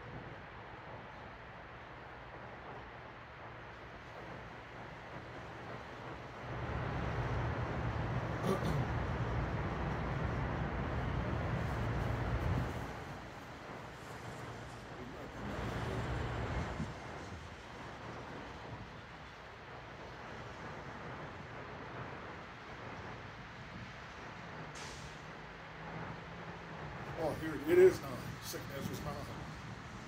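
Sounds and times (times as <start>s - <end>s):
steady road noise: 0.0s - 30.0s.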